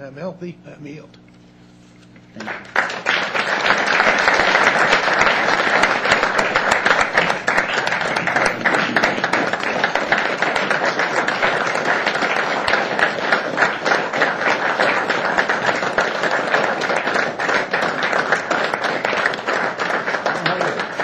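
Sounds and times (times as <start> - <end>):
audience applauding: 2.4 - 21.0.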